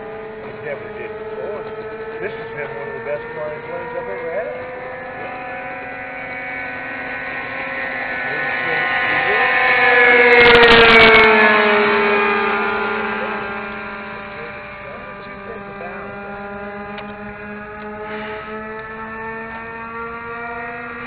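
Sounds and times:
low steady engine tone: 0:00.0 - 0:21.0
model plane engine passing: 0:00.0 - 0:21.0.

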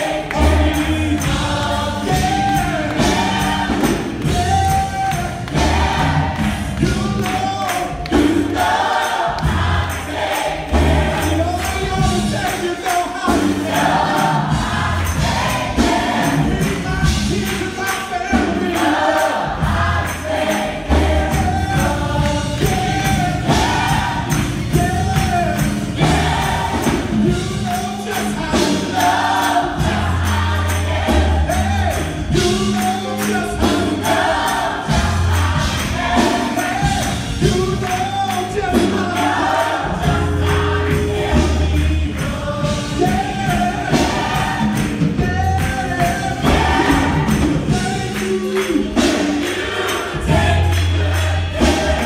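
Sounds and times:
gospel choir singing: 0:00.0 - 0:52.0
live band with bass line: 0:00.0 - 0:52.0
percussion hits: 0:00.0 - 0:52.0.

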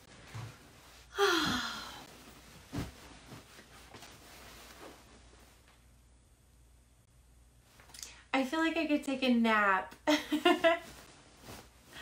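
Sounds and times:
fabric rustling: 0:02.0 - 0:05.7, 0:10.5 - 0:12.0
soft pillow thump: 0:02.6 - 0:03.4.

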